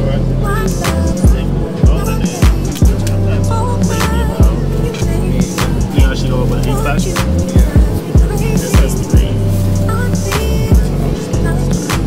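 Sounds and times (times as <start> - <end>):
bass-heavy music with kick drum: 0.0 - 12.0
person talking: 0.0 - 12.0.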